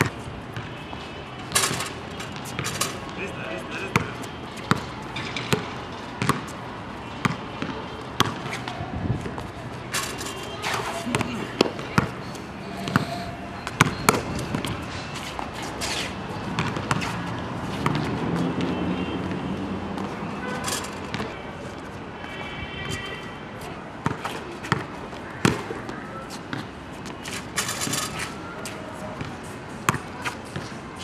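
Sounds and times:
basketball bouncing on hard court: 3.9 - 6.6, 7.2 - 9.4, 11.1 - 12.2, 12.8 - 14.8, 16.5 - 17.1, 20.0 - 21.3, 24.0 - 25.8.

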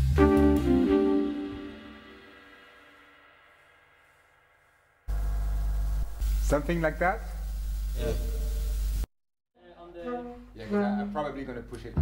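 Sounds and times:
held music notes: 0.0 - 2.8, 9.8 - 12.0.

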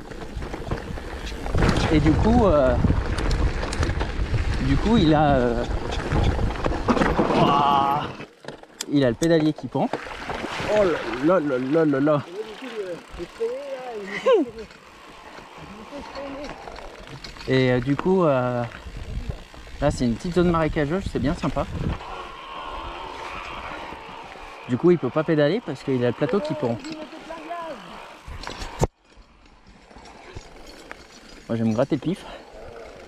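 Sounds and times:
bikes rolling on dirt trail: 0.0 - 33.0
man calling out: 24.7 - 28.0.

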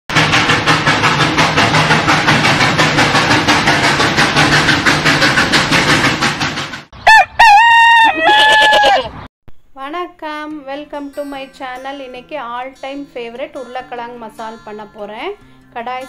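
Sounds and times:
steam train chugging: 0.1 - 7.0
rooster crowing: 7.0 - 9.2.

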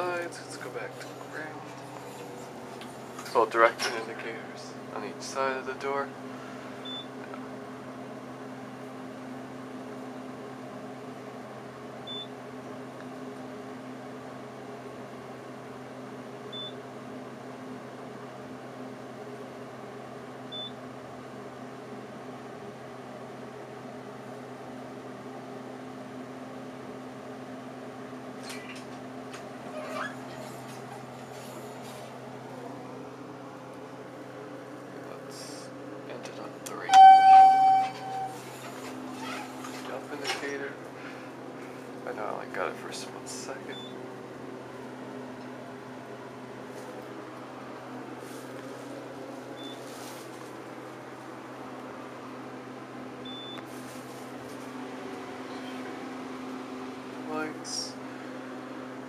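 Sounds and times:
elevator low hum: 36.7 - 42.4
electronic chime: 36.9 - 38.4
short beeps: 36.9 - 38.4.

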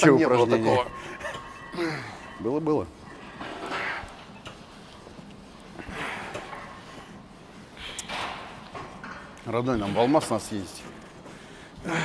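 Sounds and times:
low gym room noise: 0.0 - 12.0.

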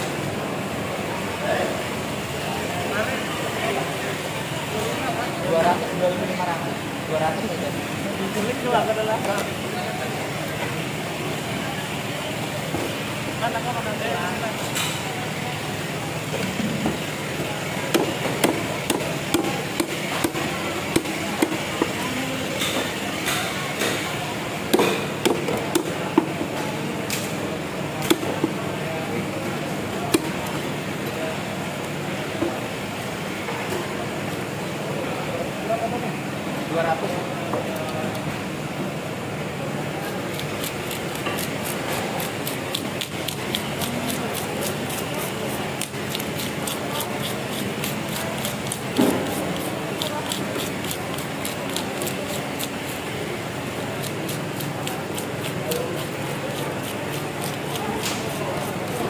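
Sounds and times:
murmur of voices: 0.0 - 59.0
knife chopping fish on wood: 17.9 - 22.0, 24.7 - 26.3
scaler scraping fish scales: 40.3 - 53.1, 53.8 - 59.0.

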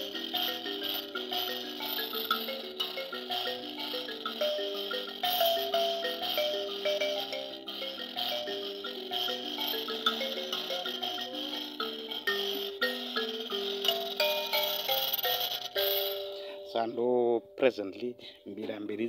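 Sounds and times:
mbira plucked metal keys: 0.0 - 19.0.

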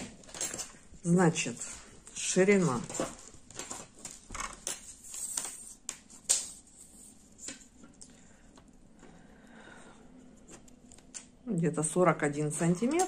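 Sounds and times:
tape measure clicks and rustles: 2.9 - 7.1.

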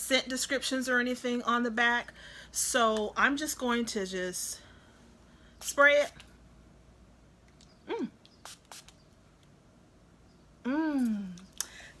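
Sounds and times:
woman humming approval: 7.9 - 8.2, 10.6 - 11.4
spray bottle spritzes: 8.4 - 9.0.

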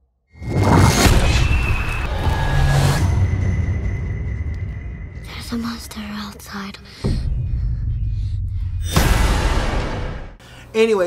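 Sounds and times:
deep rumble: 1.5 - 10.4.

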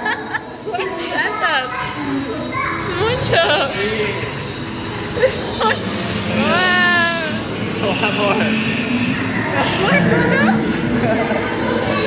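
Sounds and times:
child-like voices chattering: 0.0 - 12.0.

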